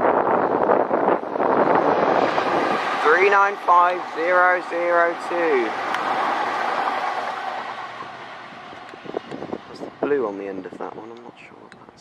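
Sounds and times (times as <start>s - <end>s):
electric train passing: 0.5s - 10.8s.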